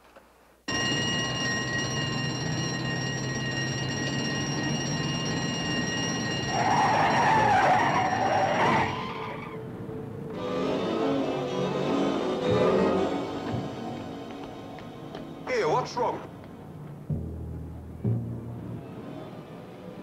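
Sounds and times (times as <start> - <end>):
wavering squeal: 0.7 - 13.4
lorry driving: 0.7 - 20.0.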